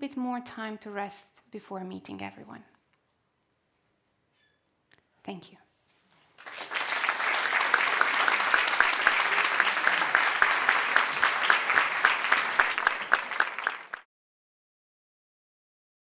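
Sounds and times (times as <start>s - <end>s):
near person clapping: 6.4s - 14.0s
audience applauding: 6.4s - 14.1s.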